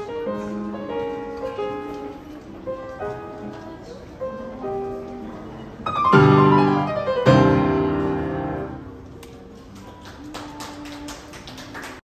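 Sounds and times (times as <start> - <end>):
faint piano: 0.0 - 12.0
scattered hand claps: 9.2 - 12.0.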